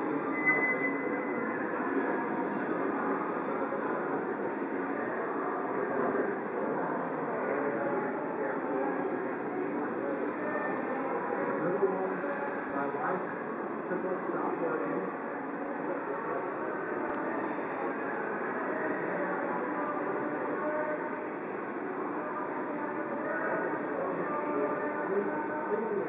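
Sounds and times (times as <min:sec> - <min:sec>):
hubbub of many voices: 0:00.0 - 0:26.0.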